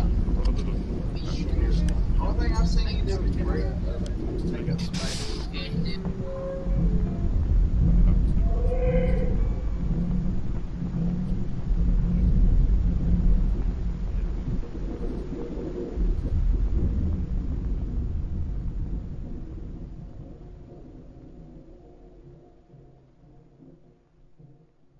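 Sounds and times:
deep rumbling drone: 0:00.0 - 0:24.4.

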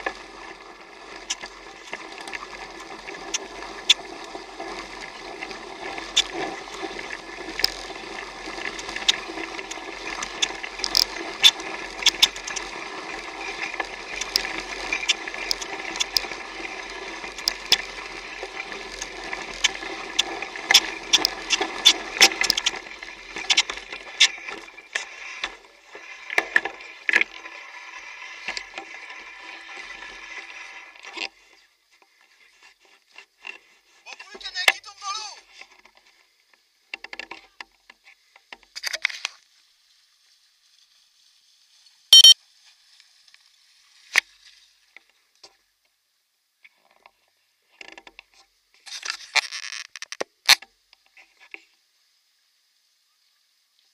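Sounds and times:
bike rattling over bumps: 0:00.0 - 0:31.5
bike tyres rolling: 0:00.0 - 0:34.5.

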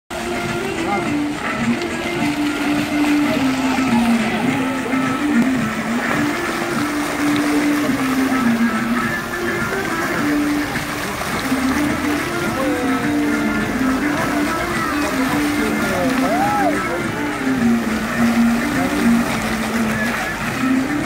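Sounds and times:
fountain water jets splashing: 0:00.1 - 0:21.0
slow melody over loudspeakers: 0:00.1 - 0:21.0.

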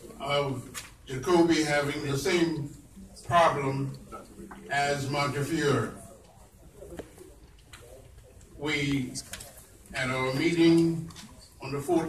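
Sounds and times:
faint murmurs: 0:01.8 - 0:12.0.

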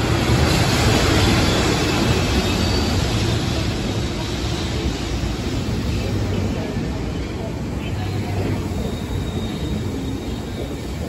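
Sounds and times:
train wheels rumbling on rails: 0:00.0 - 0:11.0.

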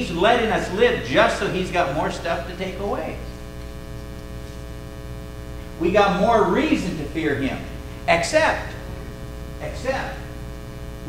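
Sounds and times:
man talking: 0:00.0 - 0:03.3, 0:05.8 - 0:08.9, 0:09.6 - 0:10.4
electrical mains hum: 0:00.0 - 0:11.0.

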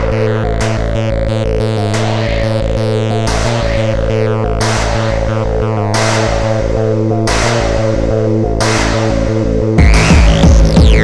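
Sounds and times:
pounding kick drum and bass: 0:00.0 - 0:11.0
tekno track: 0:00.0 - 0:11.0.

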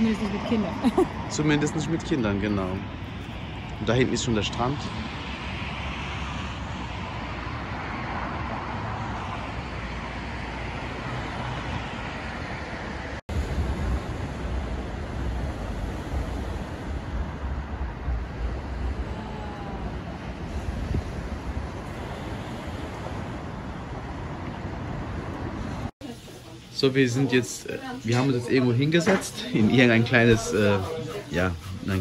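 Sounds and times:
road traffic: 0:00.0 - 0:32.0
wind on microphone: 0:02.0 - 0:25.9.

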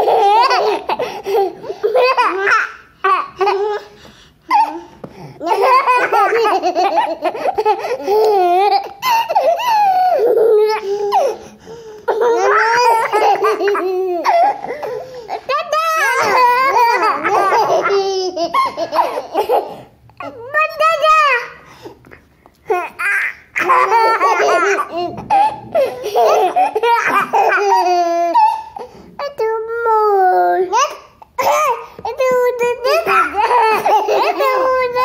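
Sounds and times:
toddlers laughing: 0:00.0 - 0:11.5, 0:12.1 - 0:21.2, 0:22.7 - 0:28.9, 0:30.7 - 0:35.0.

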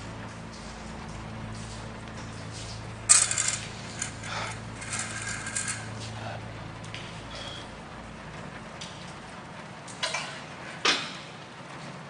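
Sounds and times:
faint steady hum: 0:00.0 - 0:12.0
small metal objects clinking: 0:03.1 - 0:06.1.

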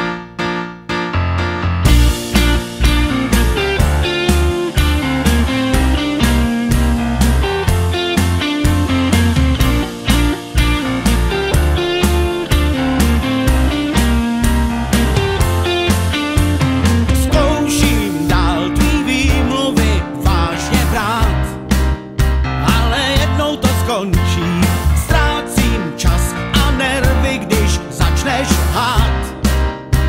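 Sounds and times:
instrumental rock band: 0:00.0 - 0:30.0.

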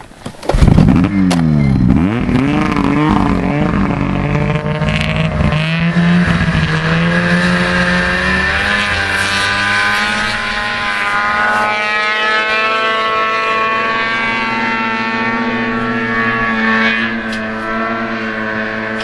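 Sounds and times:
snowmobile engine revving: 0:00.5 - 0:19.0.

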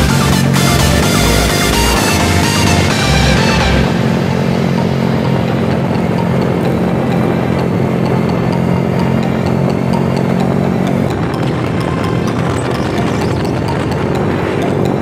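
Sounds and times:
motorcycle engines running: 0:00.0 - 0:15.0
wind and road rush: 0:00.0 - 0:15.0.

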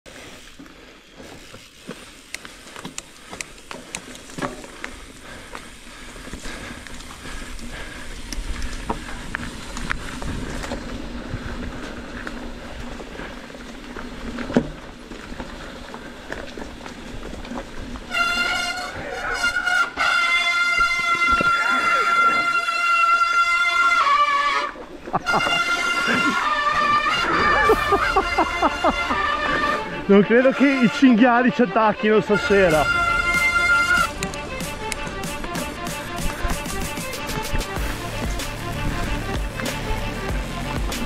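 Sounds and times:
bike tyres on dirt trail: 0:00.0 - 0:41.0
disc brakes squealing: 0:18.1 - 0:35.2.

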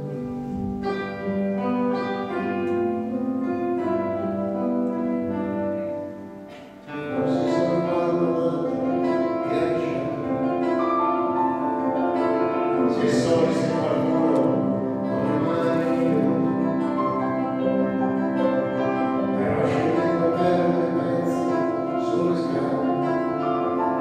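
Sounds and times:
grand piano sustained notes: 0:00.0 - 0:24.0
live concert music: 0:00.0 - 0:24.0.

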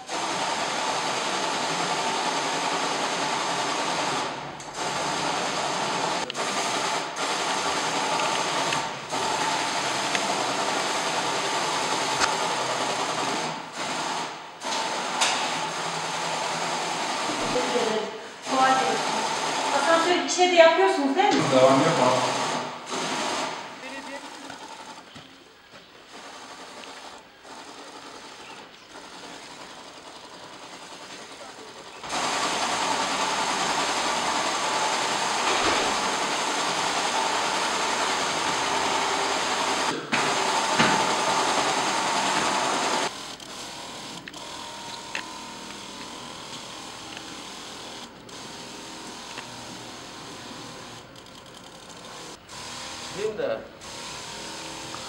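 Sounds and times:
sprayer hissing: 0:00.0 - 0:20.4, 0:21.0 - 0:24.8, 0:26.1 - 0:51.2, 0:51.8 - 0:55.0.

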